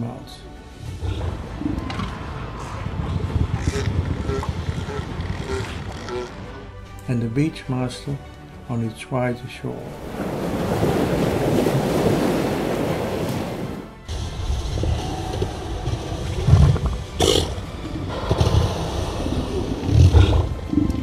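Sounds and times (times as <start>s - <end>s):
elephant seal roaring: 0.9s - 6.6s, 14.7s - 21.0s
surf washing on a beach: 9.8s - 14.0s.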